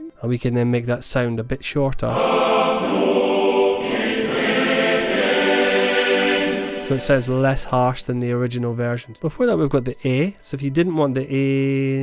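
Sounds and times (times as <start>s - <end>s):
male choir sustained chord: 2.1s - 8.0s.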